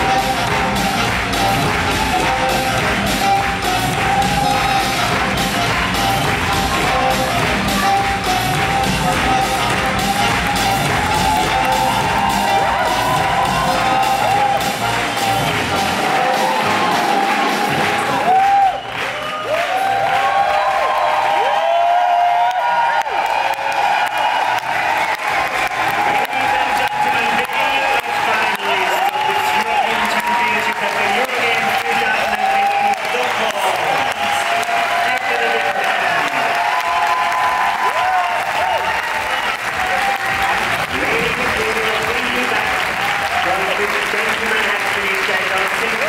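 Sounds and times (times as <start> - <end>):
audience applauding: 0.0 - 46.0
crowd cheering and calling out: 0.0 - 46.0.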